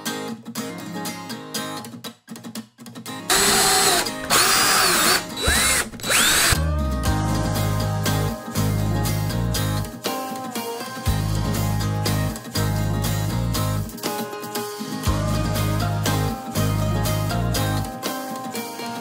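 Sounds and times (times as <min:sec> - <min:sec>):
acoustic guitar music: 0:00.0 - 0:04.4, 0:06.6 - 0:19.0
cordless drill whine: 0:03.3 - 0:06.6.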